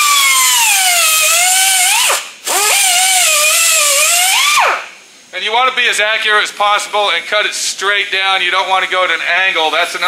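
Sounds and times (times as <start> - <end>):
air cut-off wheel whining: 0.0 - 5.0.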